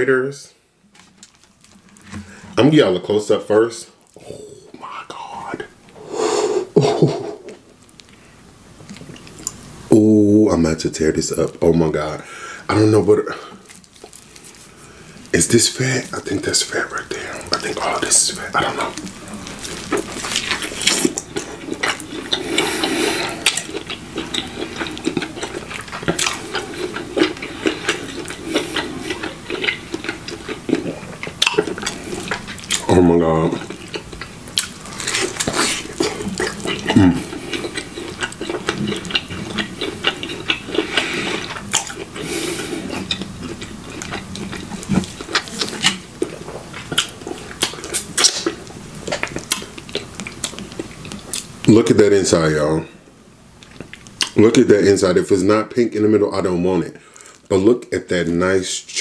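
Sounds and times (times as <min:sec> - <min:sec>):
biting and chewing meat: 0:13.2 - 0:51.8
wet smacking mouth sounds: 0:16.3 - 0:32.9, 0:33.5 - 0:51.5
person humming moan: 0:37.0 - 0:37.3.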